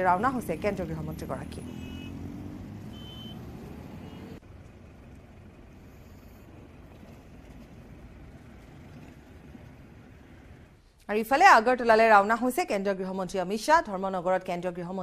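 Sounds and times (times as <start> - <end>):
cars driving past: 0.0 - 10.8.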